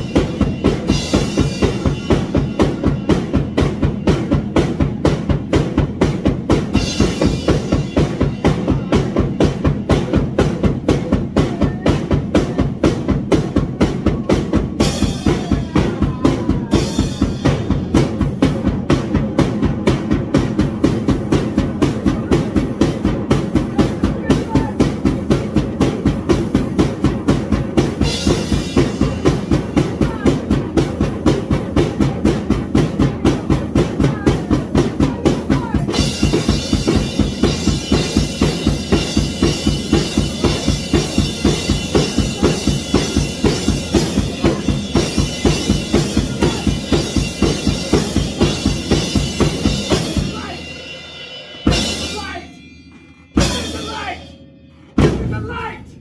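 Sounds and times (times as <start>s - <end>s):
bass drum and snare beat: 0.0s - 50.8s, 51.6s - 52.6s, 54.9s - 56.0s
cymbals ringing: 35.8s - 56.0s.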